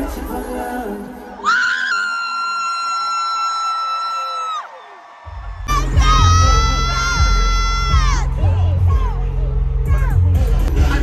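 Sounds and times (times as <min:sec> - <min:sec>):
crowd cheering: 0:01.2 - 0:10.2
heavy bass: 0:05.3 - 0:11.0.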